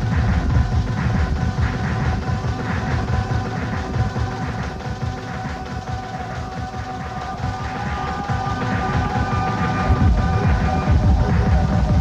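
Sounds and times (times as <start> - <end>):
techno bass-heavy beat: 0.0 - 12.0.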